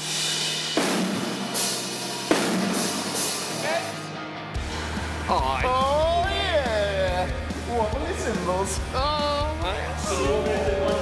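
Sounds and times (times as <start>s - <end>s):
crash cymbal and drum hits: 0.0s - 4.0s.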